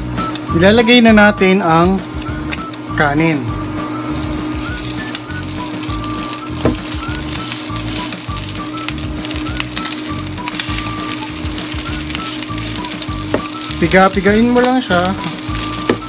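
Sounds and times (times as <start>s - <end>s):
background music with steady beat: 0.0s - 16.0s
rice sizzling in a pan: 0.0s - 16.0s
wooden spoon stirring rice: 5.8s - 16.0s.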